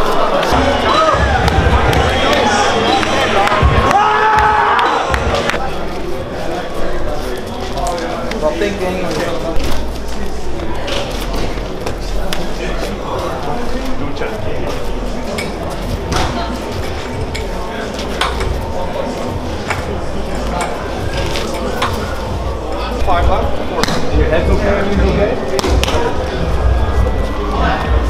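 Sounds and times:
chatter of many people: 0.0s - 28.0s.

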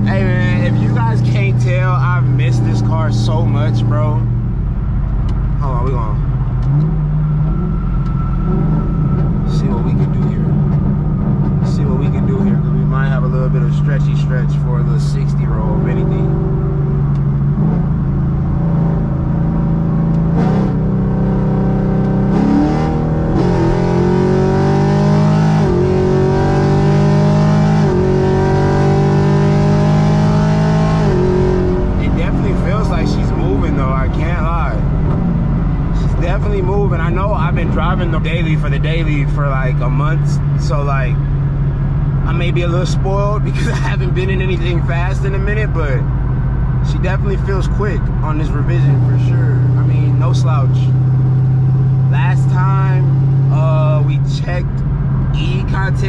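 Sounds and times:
car engine accelerating through gears: 0.0s - 56.0s.

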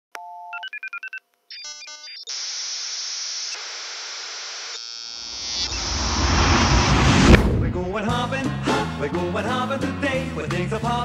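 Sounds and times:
tv static hiss: 2.2s - 5.7s
opening music: 7.3s - 9.6s.

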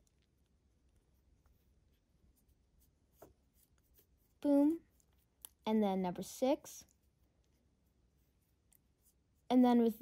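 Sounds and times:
crochet hook scratching yarn: 0.0s - 10.0s.

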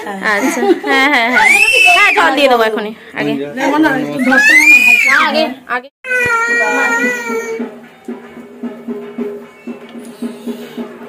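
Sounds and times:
toddler crying: 6.0s - 7.7s.

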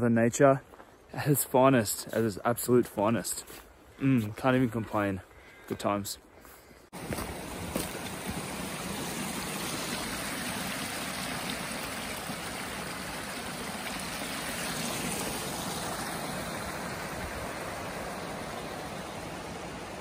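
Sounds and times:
creek water flowing: 0.7s - 20.0s.

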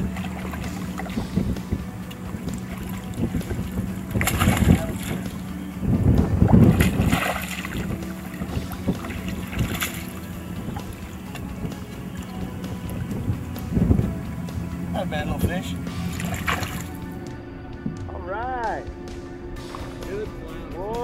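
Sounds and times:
fish splashing in water: 0.0s - 14.2s, 15.9s - 17.1s
wind buffeting microphone: 0.0s - 18.2s
steady low hum: 0.0s - 20.7s.

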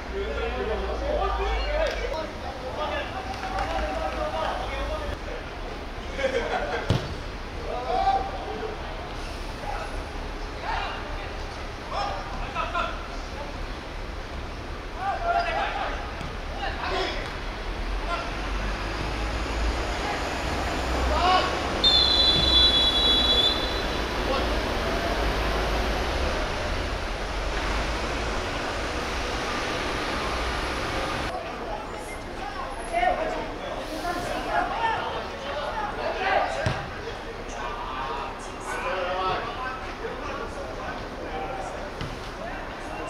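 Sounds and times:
football kick: 6.9s - 7.2s
referee's whistle blast: 21.8s - 24.0s.

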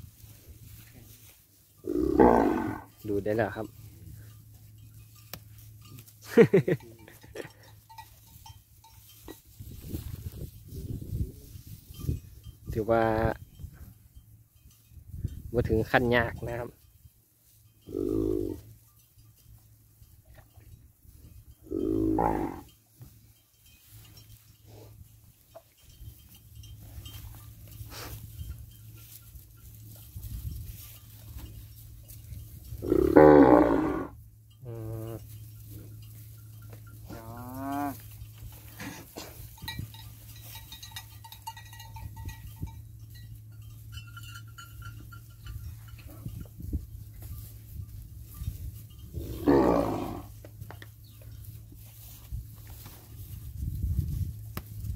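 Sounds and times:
cattle mooing: 1.8s - 3.0s, 21.7s - 22.7s, 32.8s - 35.2s, 37.1s - 38.0s, 49.2s - 50.3s.

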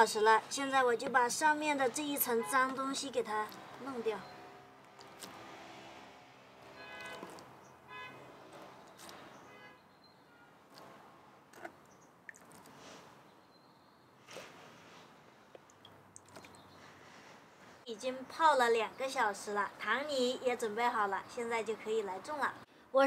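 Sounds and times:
light water sounds: 6.7s - 8.0s, 10.7s - 13.3s, 14.3s - 16.8s.

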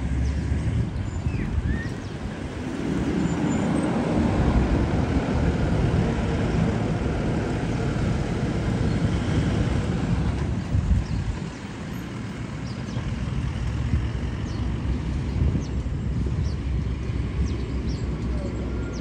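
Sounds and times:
off-road vehicles driving past: 0.0s - 19.0s.

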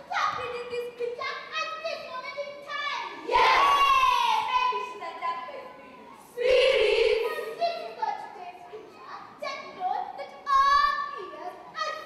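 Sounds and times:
girls speaking: 0.0s - 12.0s.

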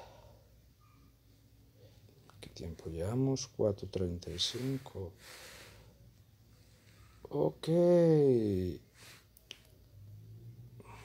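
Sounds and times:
faint low hum: 0.0s - 11.0s
soft breath: 4.3s - 7.3s, 10.8s - 11.0s.

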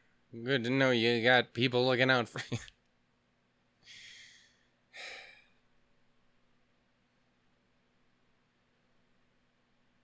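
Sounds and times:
breathy sigh: 3.8s - 5.6s
man breathing: 3.8s - 5.7s.

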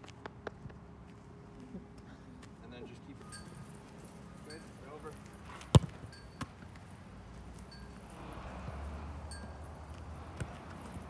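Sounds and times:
soccer ball kick thud: 5.6s - 6.5s.

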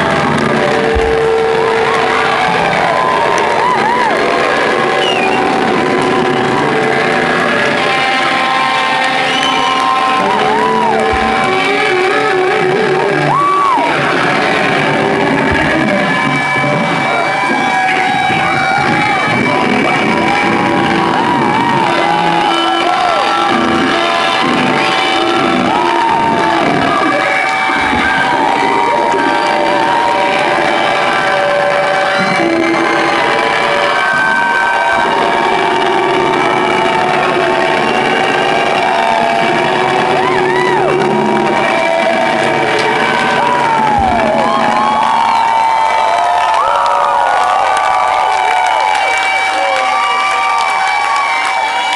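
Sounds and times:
live rock band: 0.0s - 46.6s
crowd shouting and cheering: 0.0s - 51.9s.

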